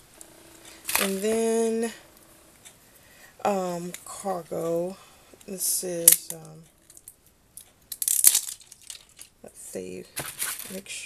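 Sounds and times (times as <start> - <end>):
packaging crinkling and rustling: 0.7 - 1.4, 8.2 - 9.4, 10.1 - 10.9.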